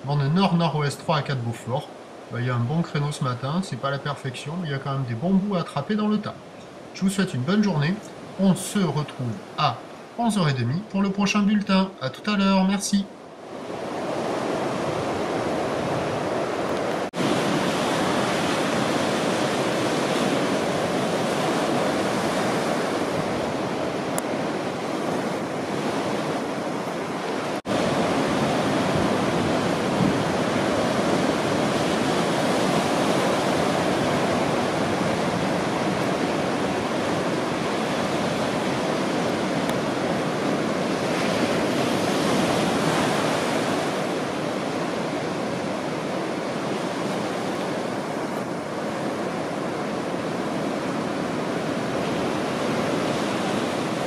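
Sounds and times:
waves breaking on beach: 0:00.0 - 0:54.0.

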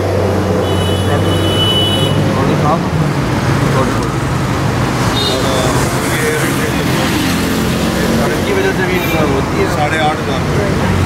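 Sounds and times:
car engine rumbling: 0:00.0 - 0:11.0
men talking: 0:00.0 - 0:11.0
street traffic: 0:00.0 - 0:11.0.

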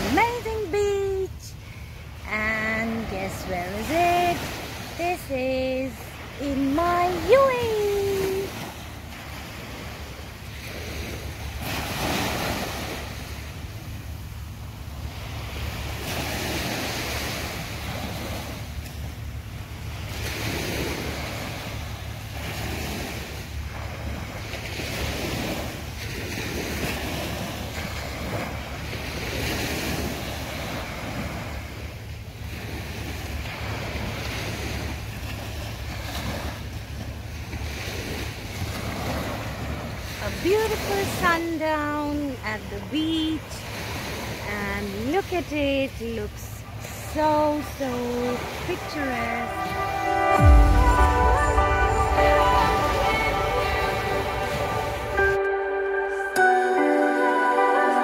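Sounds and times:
small waves breaking on beach: 0:00.0 - 0:55.5.

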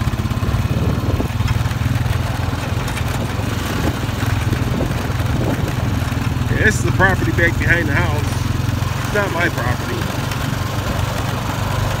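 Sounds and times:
quad bike engine running: 0:00.0 - 0:12.0.

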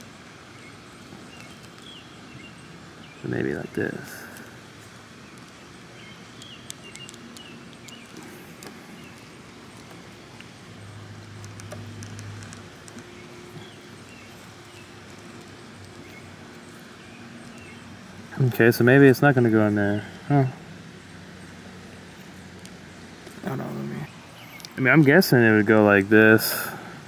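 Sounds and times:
faint outdoor background: 0:00.0 - 0:27.0.

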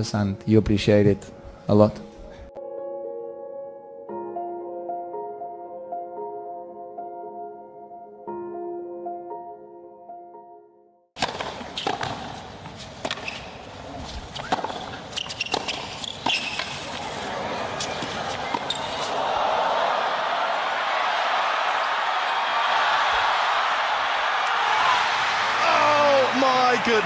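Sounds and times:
music: 0:00.0 - 0:11.2
racket striking ball: 0:11.2 - 0:12.4, 0:13.0 - 0:13.5, 0:14.4 - 0:16.8
tennis ball bouncing: 0:11.2 - 0:13.6, 0:14.4 - 0:17.1.

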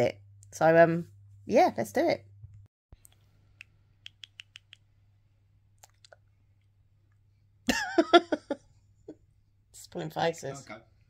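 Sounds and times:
mouth clicks: 0:03.0 - 0:04.9, 0:05.8 - 0:06.2.

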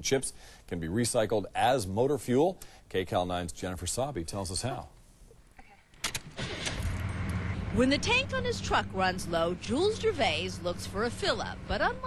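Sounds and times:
diesel engine running: 0:06.4 - 0:12.0.

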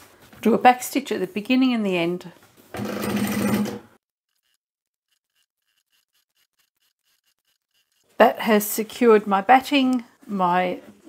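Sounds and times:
sewing machine stitching: 0:02.7 - 0:08.2.

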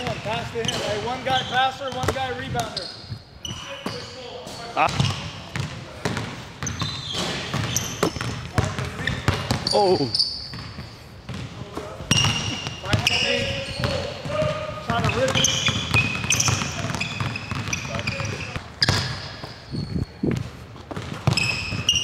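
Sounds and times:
basketballs bouncing on hardwood: 0:00.0 - 0:02.8, 0:04.8 - 0:09.8, 0:10.5 - 0:19.6, 0:20.2 - 0:22.0
sneakers squeaking on court: 0:00.0 - 0:22.0.

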